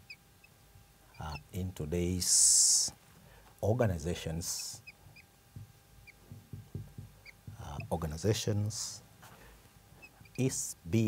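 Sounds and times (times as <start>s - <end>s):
marker squeaking on whiteboard: 4.6s - 5.3s, 7.2s - 8.1s, 10.0s - 10.5s
soft knocks of pen strokes: 5.5s - 8.0s.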